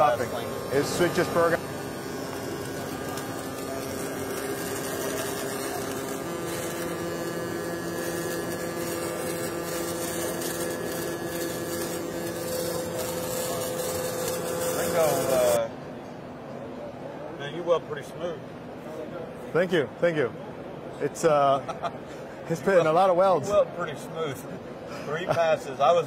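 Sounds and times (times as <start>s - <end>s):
welding arc buzzing hiss: 0.0s - 15.7s.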